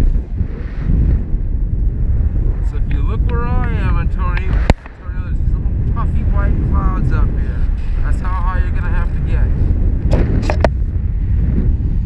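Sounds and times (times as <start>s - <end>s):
wind buffeting microphone: 0.0s - 12.0s
sharp click: 4.3s - 5.0s.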